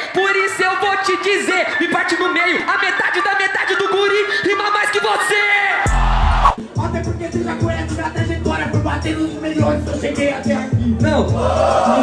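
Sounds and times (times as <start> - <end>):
person rapping into a microphone: 0.0 - 12.0
beat: 5.9 - 9.7.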